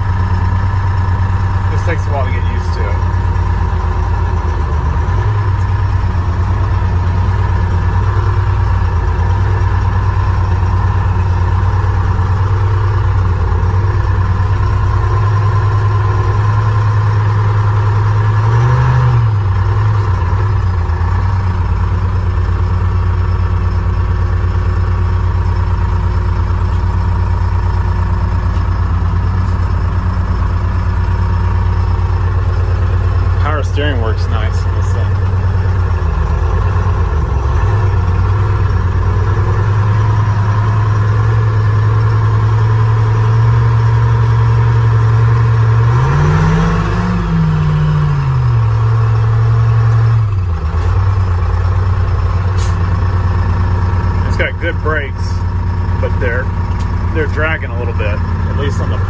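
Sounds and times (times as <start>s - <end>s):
diesel truck engine running: 0.0s - 59.0s.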